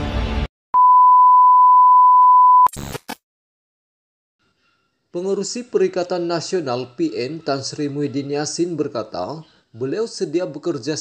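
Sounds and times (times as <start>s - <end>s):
music: 0.0s - 0.5s
steady electronic beep: 0.8s - 2.7s.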